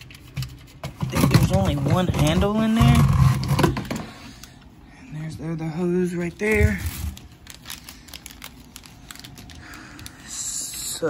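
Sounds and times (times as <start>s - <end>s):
plastic wrapping rustling: 5.8s - 11.0s.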